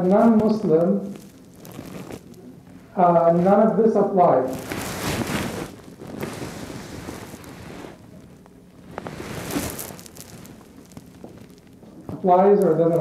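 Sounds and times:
clothing rustling: 0:00.0 - 0:03.6, 0:04.4 - 0:13.0.

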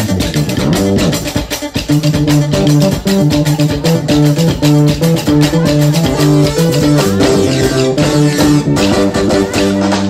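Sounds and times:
bass guitar: 0:00.0 - 0:10.0
electric guitar: 0:00.0 - 0:10.0
steady drum beat: 0:00.0 - 0:10.0.

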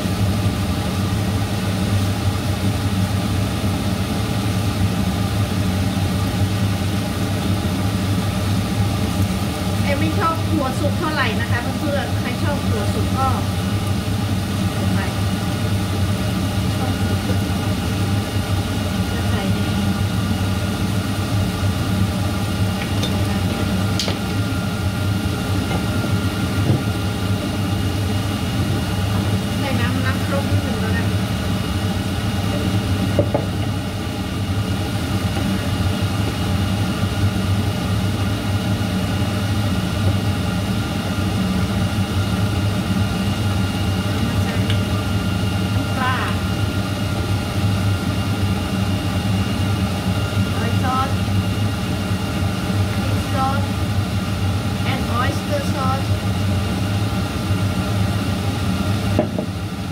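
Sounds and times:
loud low mechanical hum: 0:00.0 - 0:59.9.

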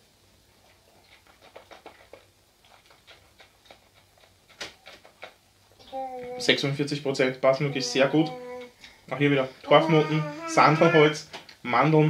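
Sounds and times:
lip and tongue smacks: 0:00.6 - 0:05.4.

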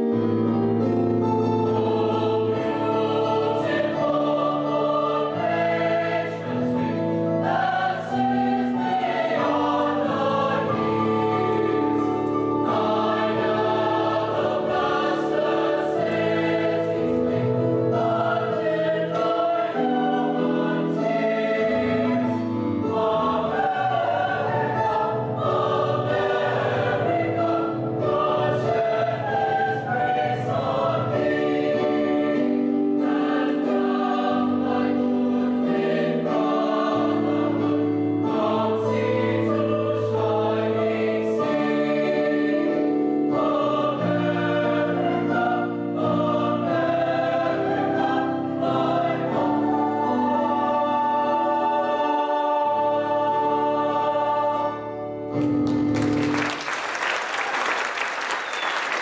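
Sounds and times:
mixed choir singing: 0:01.2 - 0:59.0.

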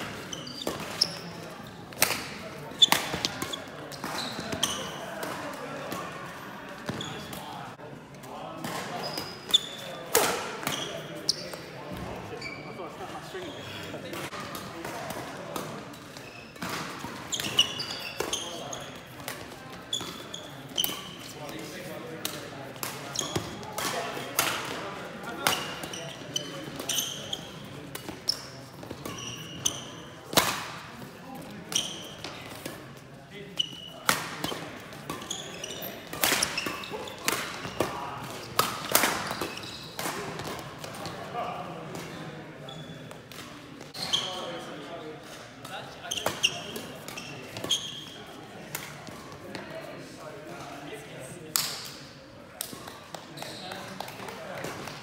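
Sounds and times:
shoes squeaking on court floor: 0:00.0 - 0:07.7, 0:08.4 - 0:49.8, 0:52.6 - 0:55.0
rackets hitting shuttlecock: 0:01.9 - 0:06.1, 0:10.0 - 0:10.9, 0:27.8 - 0:30.8, 0:33.9 - 0:41.2.

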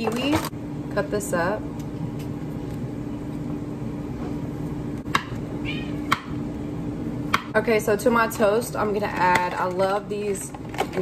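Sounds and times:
low kitchen hum: 0:00.0 - 0:11.0.

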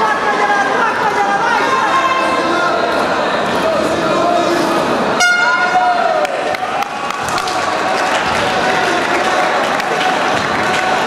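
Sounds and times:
crowd shouting: 0:00.0 - 0:11.0
buzzing signal horn: 0:05.2 - 0:05.8.

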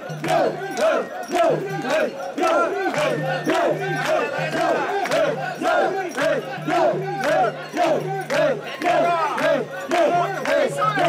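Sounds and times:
group shouting rhythmic chant: 0:00.0 - 0:11.0.

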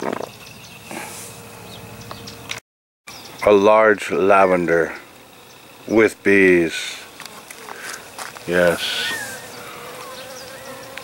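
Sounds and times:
bees buzzing: 0:00.0 - 0:02.5, 0:04.0 - 0:11.0
bee humming close by: 0:04.1 - 0:11.0.

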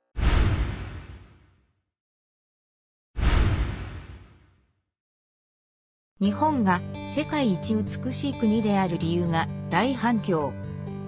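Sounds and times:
whoosh and hit with low boom: 0:00.1 - 0:01.7, 0:03.2 - 0:04.7.

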